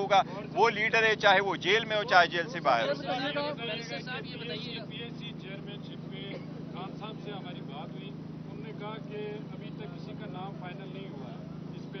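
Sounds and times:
distant voices talking: 0:00.0 - 0:12.0
steady low hum: 0:00.0 - 0:12.0.

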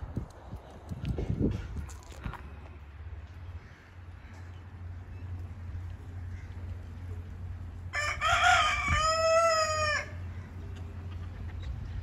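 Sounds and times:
rooster crowing: 0:07.9 - 0:10.3.

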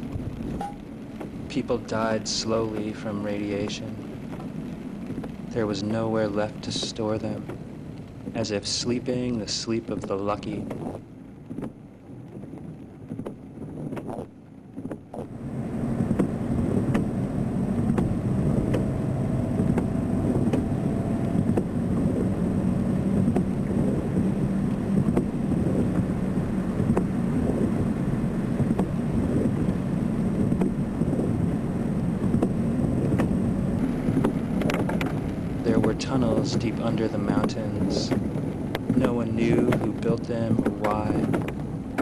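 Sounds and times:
dense low rumble: 0:00.0 - 0:42.0.

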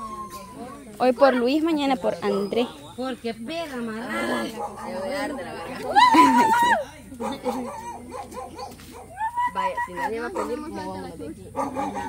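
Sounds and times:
women chattering: 0:00.0 - 0:12.0.

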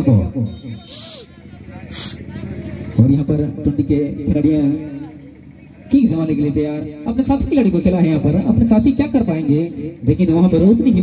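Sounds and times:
faint voices: 0:00.6 - 0:03.2
short bursts of hiss: 0:00.8 - 0:01.3, 0:01.9 - 0:02.3.

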